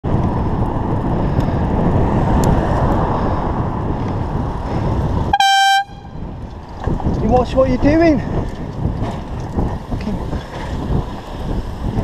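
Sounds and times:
wind and road noise on microphone: 0.0 - 12.0
short horn toot: 5.3 - 6.2.

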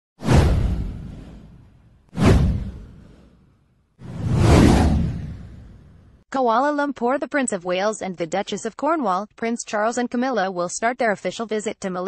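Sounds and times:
deep whoosh sound effects: 0.2 - 6.2.

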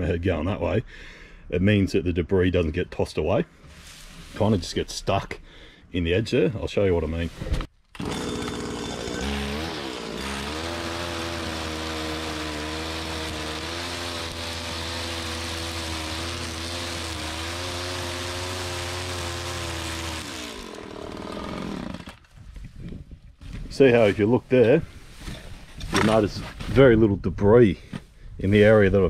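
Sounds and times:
string trimmer cutting grass: 8.0 - 22.4.

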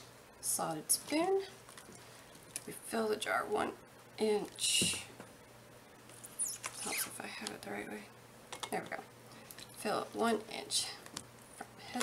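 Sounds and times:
high falling squeak: 6.4 - 7.1.

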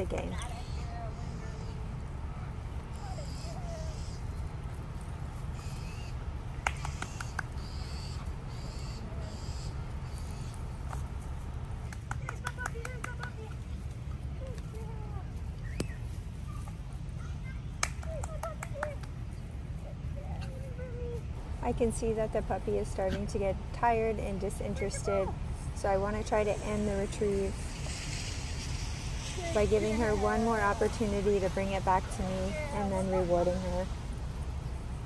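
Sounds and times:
low outdoor rumble: 0.0 - 35.0
quick clicking noises: 2.8 - 9.0
woman calling to a puppy: 24.2 - 25.4, 29.5 - 33.9.

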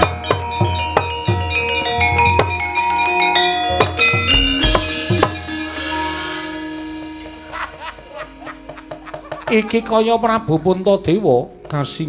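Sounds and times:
ringing struck metal keys: 0.0 - 6.1
drum strokes: 0.0 - 12.0
gamelan music: 0.0 - 12.0
deep gong stroke: 3.8 - 11.9.

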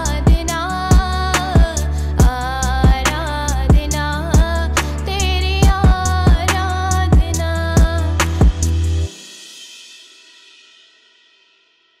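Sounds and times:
cymbal crash ringing: 8.5 - 12.0.

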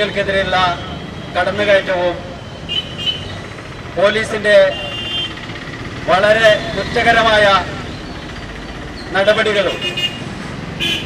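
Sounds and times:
man speaking over a microphone: 0.0 - 2.4, 3.9 - 5.0, 6.0 - 8.0, 9.1 - 10.0
outdoor background noise: 0.0 - 11.0.

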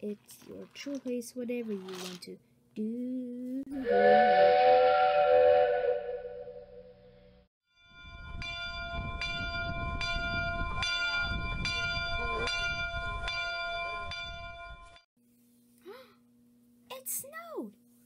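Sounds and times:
sustained whistle-like chord: 3.8 - 7.1
bell ringing: 7.8 - 15.0.

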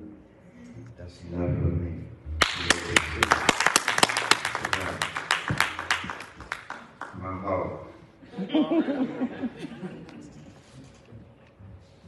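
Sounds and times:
congregation clapping: 2.4 - 7.2.

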